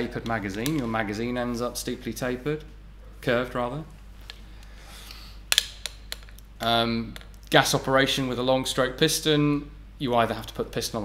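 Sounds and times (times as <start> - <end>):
soft breath: 4.4 - 5.5.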